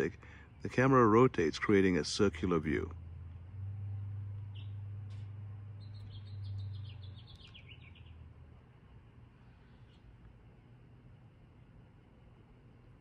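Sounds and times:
birds chirping: 0.0 - 8.7
low steady hum: 0.0 - 13.0.

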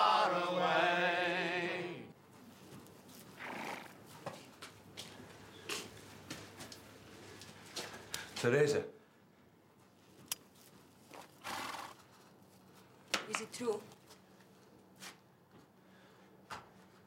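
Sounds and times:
men singing in chorus: 0.0 - 2.1.

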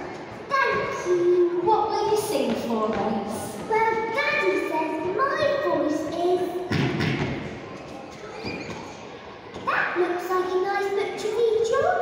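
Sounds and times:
high voice talking: 0.5 - 6.6, 9.7 - 12.0.

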